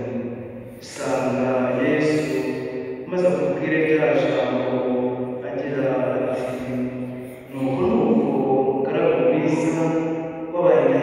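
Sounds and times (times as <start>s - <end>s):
group of voices chanting: 7.5s - 8.9s.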